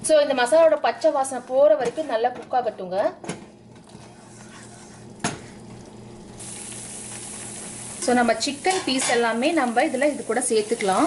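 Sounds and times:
paste sizzling in a pan: 0:05.9 - 0:11.0.

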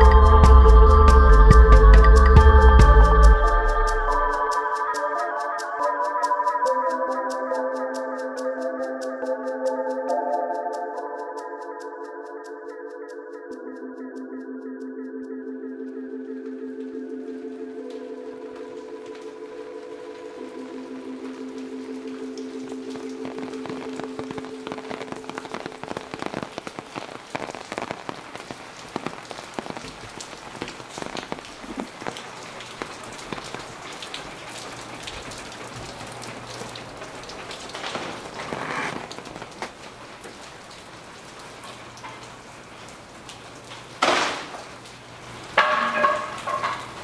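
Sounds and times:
rain dripping on pavement: 0:00.0 - 0:05.9, 0:16.3 - 0:47.0
droning music tones: 0:00.0 - 0:26.4.

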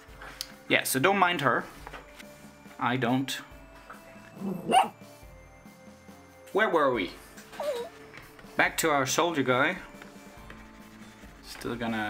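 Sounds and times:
dog barking: 0:04.6 - 0:05.0.

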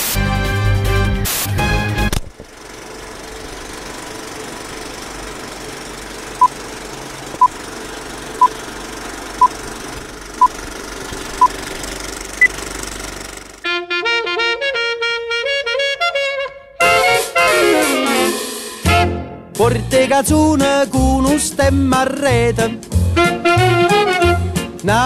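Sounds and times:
film projector whirring and rattling: 0:02.1 - 0:13.6.

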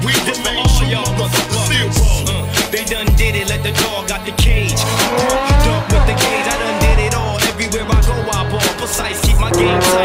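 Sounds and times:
hip-hop music with heavy bass: 0:00.0 - 0:10.0
car engine accelerating: 0:04.4 - 0:10.0.

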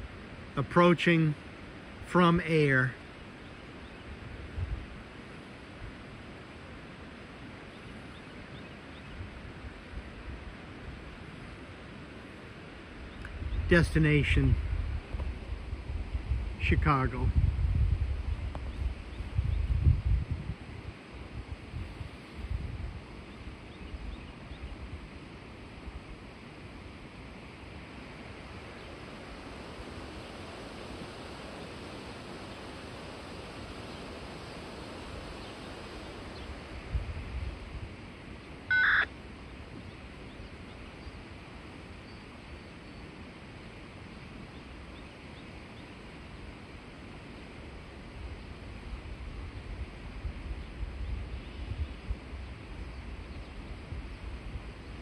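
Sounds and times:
wind hiss: 0:00.0 - 0:55.0
wind buffeting microphone: 0:13.3 - 0:13.7, 0:14.4 - 0:25.0, 0:28.3 - 0:38.1
short loud beep: 0:38.7 - 0:39.1.

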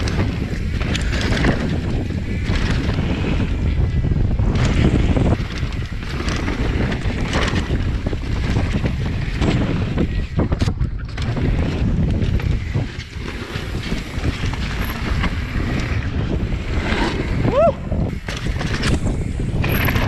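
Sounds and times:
bike knocks and rattles: 0:00.0 - 0:20.0
tyre noise on dirt: 0:00.0 - 0:20.0
wind rumbling on microphone: 0:00.0 - 0:20.0.

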